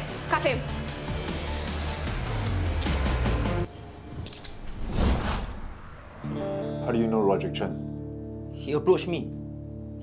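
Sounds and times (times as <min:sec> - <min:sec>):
rushing swell: 0:04.6 - 0:06.8.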